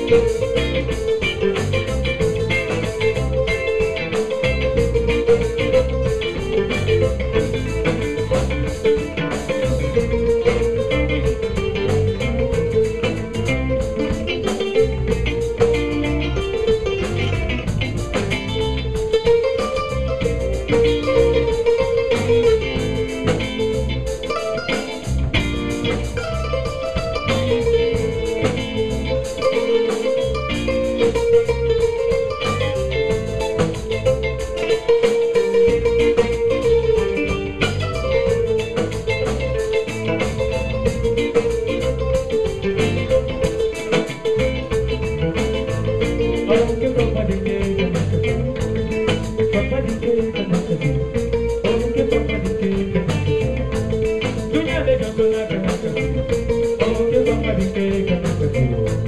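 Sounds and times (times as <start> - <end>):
drum kit: 0.0 - 59.0
electric bass: 0.0 - 59.0
electric guitar: 0.0 - 59.0
kora: 0.0 - 59.0.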